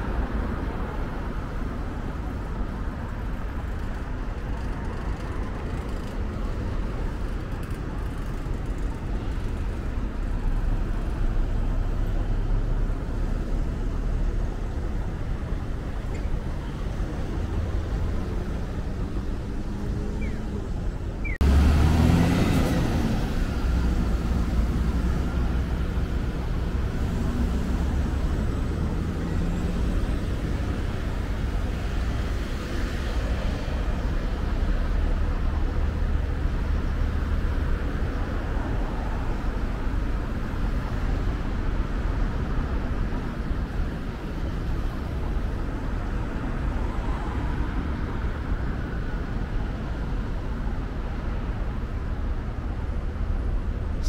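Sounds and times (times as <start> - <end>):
traffic rumble: 0.0 - 54.0.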